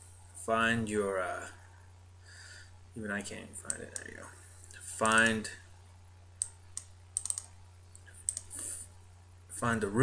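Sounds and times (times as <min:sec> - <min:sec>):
faint low electrical hum: 0:00.0 - 0:10.0
computer mouse clicking: 0:03.7 - 0:04.1, 0:06.4 - 0:08.5.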